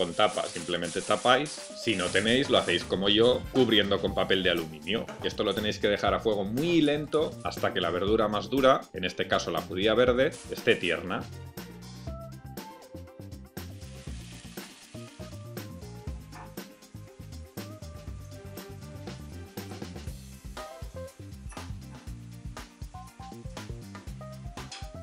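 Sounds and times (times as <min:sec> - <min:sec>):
vegetables sizzling in a wok: 0:00.0 - 0:03.4, 0:10.2 - 0:11.0, 0:13.6 - 0:25.0
background music: 0:00.0 - 0:25.0.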